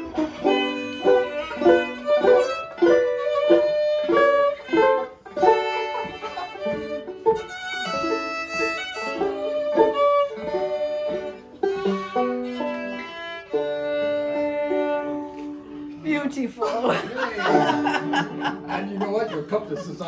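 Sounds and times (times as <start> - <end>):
fiddle bowing a tune: 0.0 - 20.0
picked banjo notes: 0.0 - 20.0.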